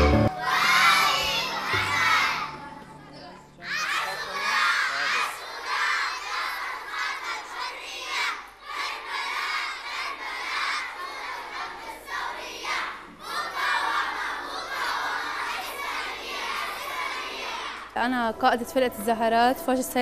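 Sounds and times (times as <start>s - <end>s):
children chanting slogans: 0.3s - 18.0s.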